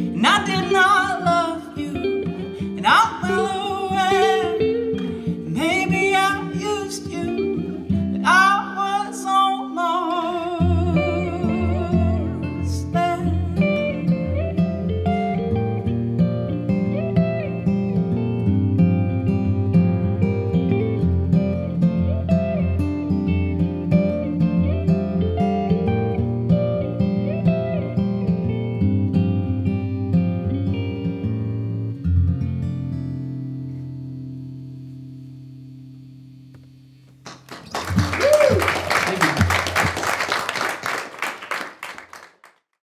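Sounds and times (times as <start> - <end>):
acoustic and electric guitars: 0.0 - 42.2
audience applauding: 37.2 - 42.7
person whooping: 37.9 - 39.8.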